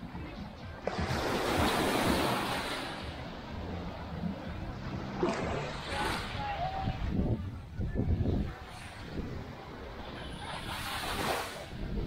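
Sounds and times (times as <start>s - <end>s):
wave washing up sand: 0.8s - 4.2s, 8.6s - 12.0s.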